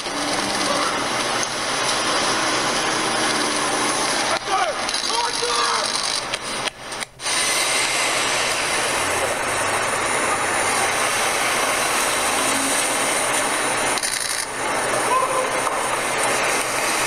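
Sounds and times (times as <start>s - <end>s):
city street noise: 0.0s - 17.0s.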